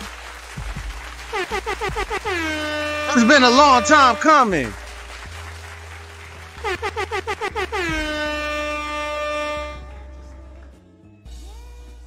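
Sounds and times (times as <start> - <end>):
low background music: 0.0 - 12.0
air horn blasts: 1.3 - 5.3, 6.6 - 10.6.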